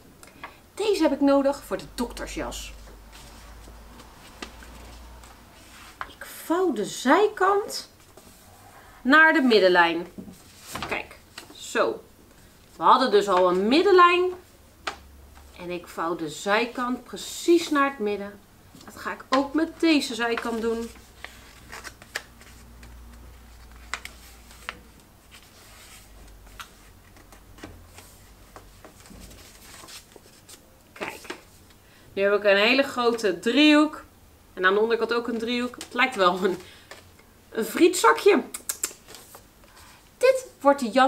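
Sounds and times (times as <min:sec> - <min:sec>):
paper being folded: 0:20.3 - 0:31.4.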